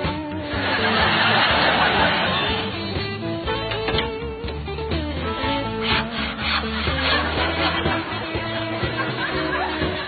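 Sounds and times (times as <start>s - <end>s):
background music: 0.0s - 10.0s
hand saw cutting log: 5.6s - 9.8s.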